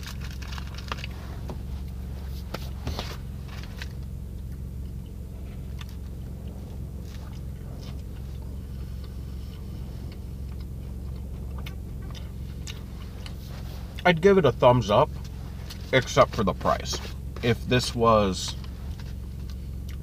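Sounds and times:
person chewing soft food: 0.0 - 14.1, 18.5 - 20.0
low hum in car cabin: 0.0 - 20.0.

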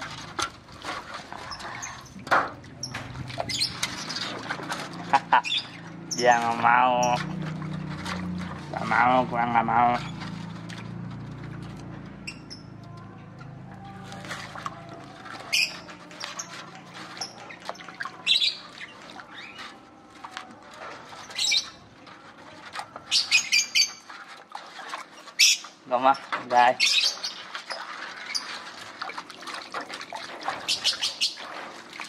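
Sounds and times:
birds chirping and squawking: 0.7 - 10.7, 12.0 - 32.0.

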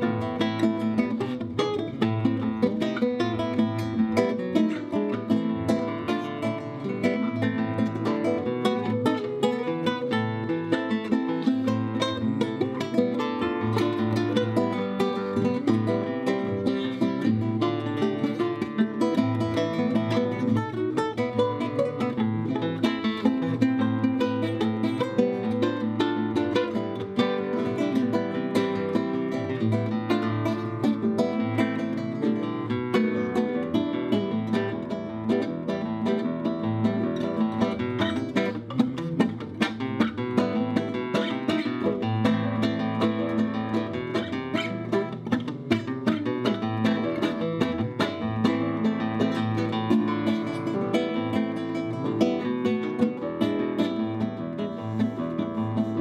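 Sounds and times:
flamenco guitar playing: 0.0 - 56.0.

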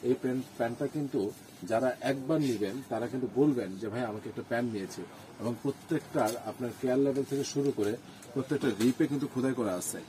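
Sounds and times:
man speaking: 0.0 - 10.0.

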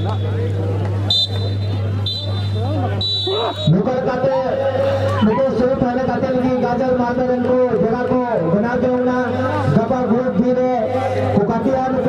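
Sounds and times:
spectators' voices: 0.0 - 12.0
short high whistle blasts: 1.1 - 3.7.

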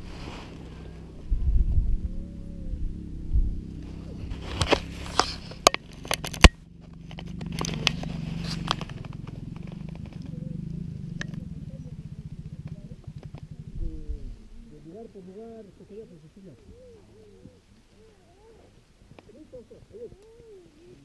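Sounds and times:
wind rumble on microphone: 0.0 - 15.1
low pulsing hum: 0.0 - 21.0
clicks and crackles: 3.8 - 11.5, 12.5 - 13.6, 18.6 - 19.4.

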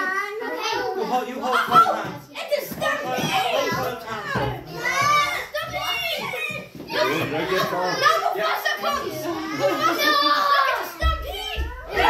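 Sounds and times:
children calling out and shouting: 0.0 - 12.0.

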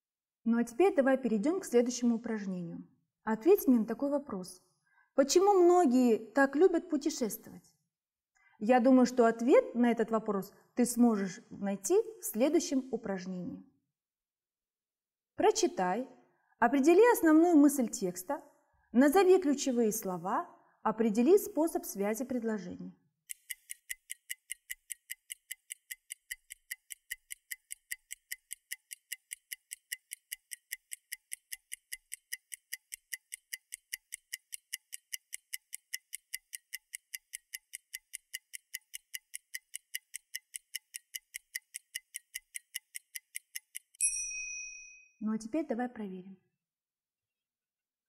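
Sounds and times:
timer ticking: 23.3 - 44.1
bell-like ding: 44.0 - 45.2.

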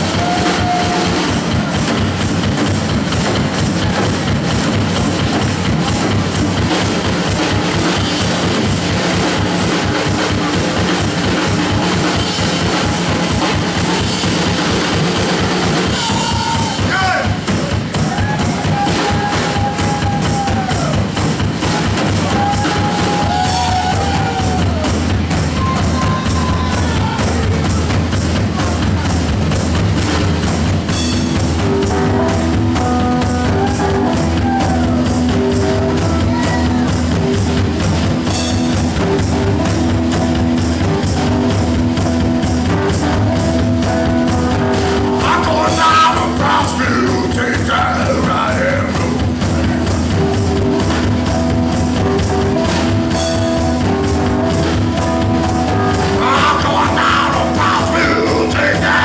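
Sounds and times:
distorted keyboard bending notes: 0.0 - 59.0
drum kit beat: 0.0 - 59.0
heavy bass line: 0.0 - 59.0
live rock band playing: 0.0 - 59.0.

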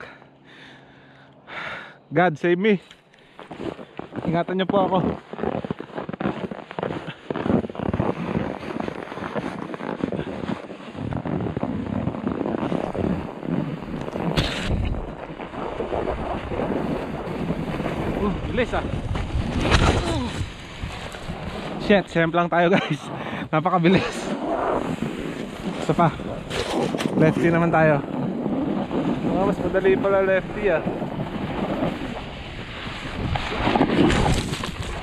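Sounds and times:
snowboard scraping snow: 3.4 - 35.0
wind on microphone: 3.6 - 35.0.

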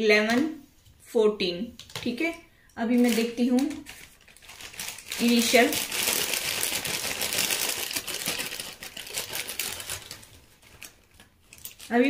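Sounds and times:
plastic pieces rattling: 2.9 - 12.0.

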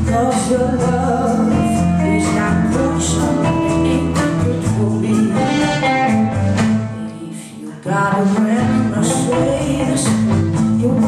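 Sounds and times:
bass: 0.0 - 11.0
drums: 0.0 - 11.0
electric guitar: 0.0 - 11.0
women singing: 0.0 - 11.0.

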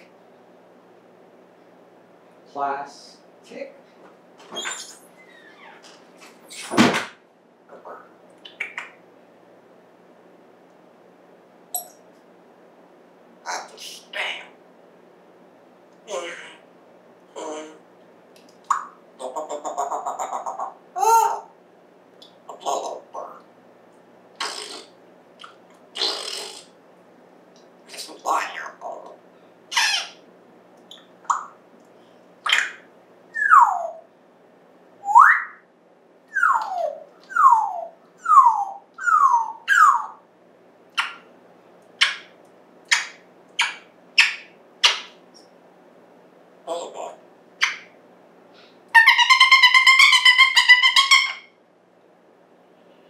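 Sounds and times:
parrot buzzy call: 24.4 - 25.0, 26.0 - 26.8, 29.7 - 30.2, 36.3 - 40.2, 48.9 - 51.6
parrot gliding whistles: 33.3 - 34.0, 35.0 - 35.6, 36.3 - 40.2.

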